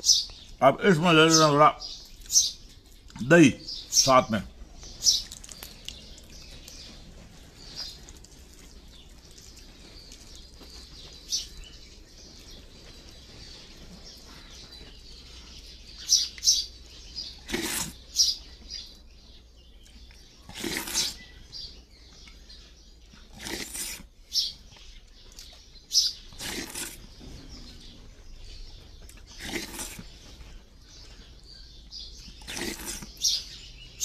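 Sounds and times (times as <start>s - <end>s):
small birds chirping: 0.0s - 34.0s.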